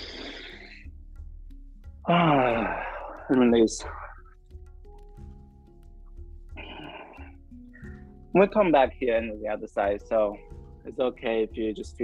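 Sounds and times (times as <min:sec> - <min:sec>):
long hissy breath: 0:00.0 - 0:00.9
soft background music: 0:00.0 - 0:12.0.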